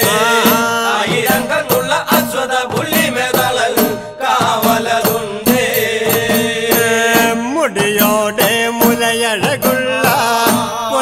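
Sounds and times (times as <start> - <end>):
chant-like folk singing: 0.0 - 11.0
percussion beat: 0.0 - 11.0.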